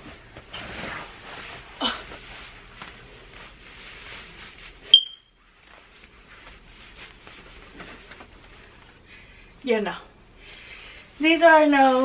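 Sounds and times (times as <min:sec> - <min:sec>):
clothing rustling: 0:00.0 - 0:09.1
high-pitched electronic beep: 0:04.9 - 0:05.3.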